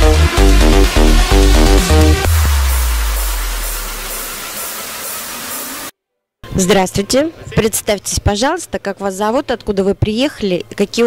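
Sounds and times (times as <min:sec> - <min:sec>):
low bass note: 0:00.0 - 0:05.4.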